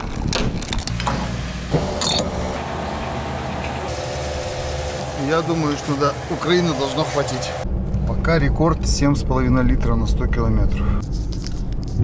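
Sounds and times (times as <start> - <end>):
fuel pump humming: 0.9 - 7.6.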